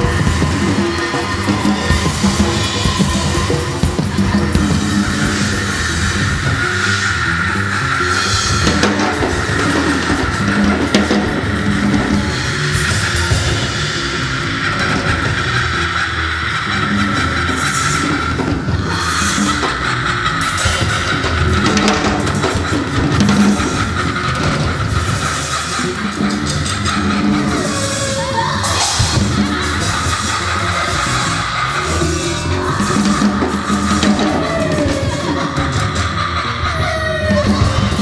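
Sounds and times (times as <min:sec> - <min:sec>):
rock band playing: 0:00.0 - 0:38.0.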